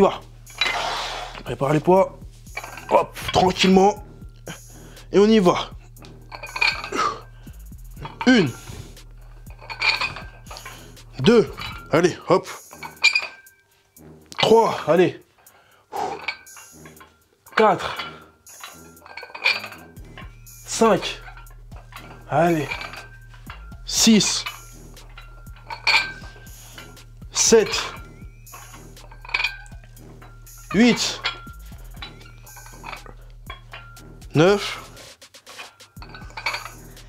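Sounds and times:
metal dumbbells clinking: 0.0s - 37.0s.

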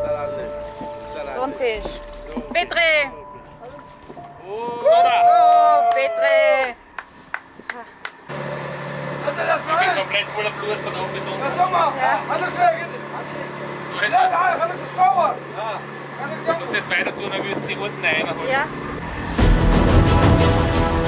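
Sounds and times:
people talking: 9.2s - 18.7s.

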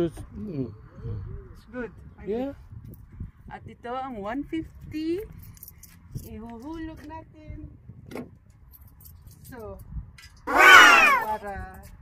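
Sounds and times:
light metallic clinks: 5.2s - 6.7s.

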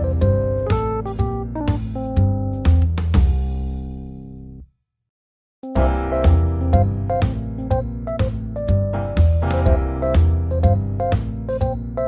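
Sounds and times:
keyboard chords over bass line: 0.0s - 3.2s, 5.6s - 12.0s.

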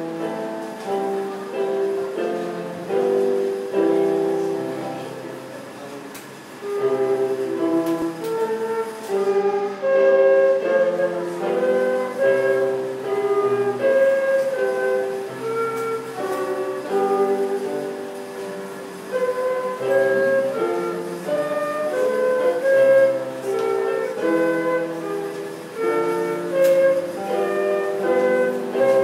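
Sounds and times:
flute playing held notes: 0.0s - 5.8s, 6.6s - 29.0s.

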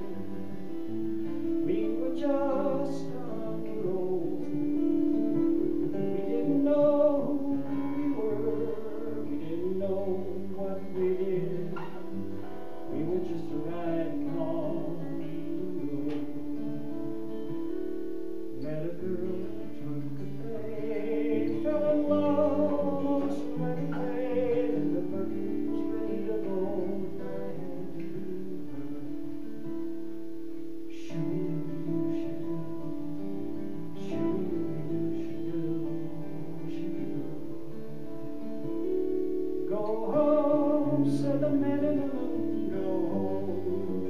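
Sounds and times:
man singing: 0.0s - 30.1s, 30.7s - 44.0s
acoustic guitar: 0.0s - 44.0s.

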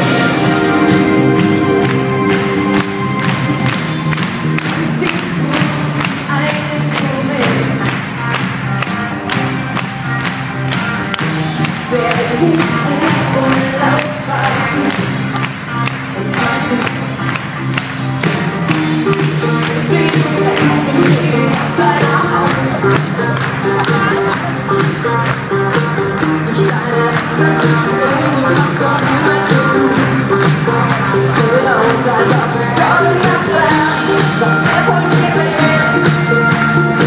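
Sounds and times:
live pop-rock band playing: 0.0s - 37.0s.

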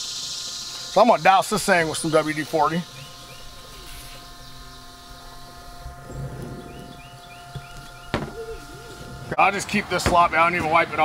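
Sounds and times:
aerosol spraying hiss: 0.0s - 4.4s
motor hum: 0.0s - 11.0s.

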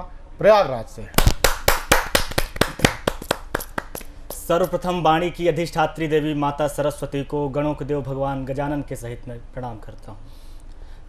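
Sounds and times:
small audience clapping: 1.2s - 4.2s.

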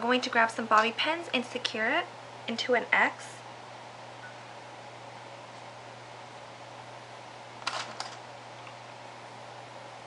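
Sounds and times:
room hiss and low hum: 0.0s - 10.0s.

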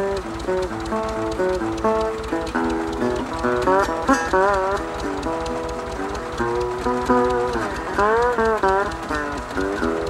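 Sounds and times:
slide guitar playing blues: 0.0s - 10.0s
tractor engine idling: 0.0s - 10.0s.

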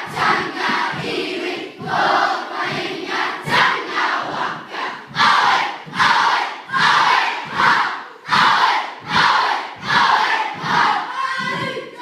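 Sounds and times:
children chanting in unison: 0.0s - 12.0s.

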